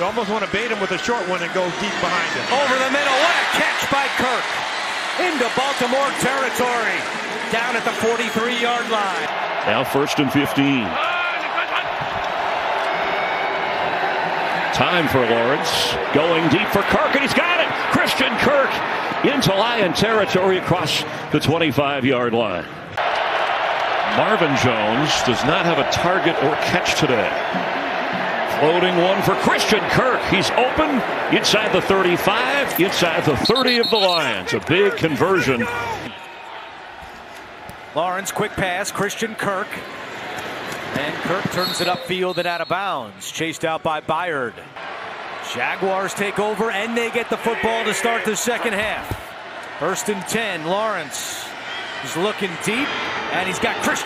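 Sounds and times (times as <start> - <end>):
stadium crowd noise: 0.0 - 54.0.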